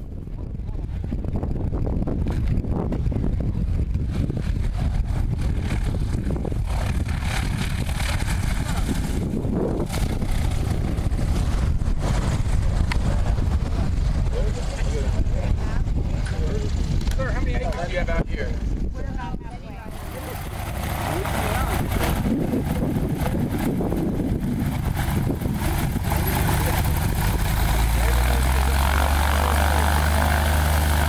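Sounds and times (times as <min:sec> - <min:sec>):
propeller aircraft engine drone: 0:00.0 - 0:31.0
wind rumble on microphone: 0:00.0 - 0:31.0.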